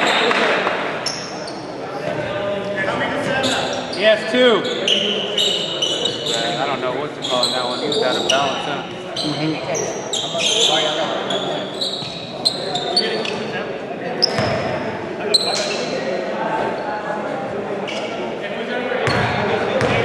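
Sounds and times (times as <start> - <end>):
sneakers squeaking on hardwood: 3.1 - 13.5, 14.2 - 15.9
basketball bouncing: 19.0 - 20.0.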